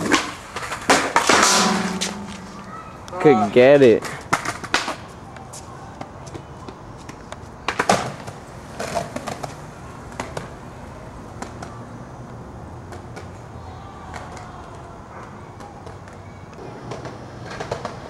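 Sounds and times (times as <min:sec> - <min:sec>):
skateboard clack on concrete: 0:00.0 - 0:02.8, 0:03.8 - 0:11.8, 0:12.8 - 0:13.4, 0:14.0 - 0:18.0
skateboard wheels rolling: 0:00.0 - 0:18.0.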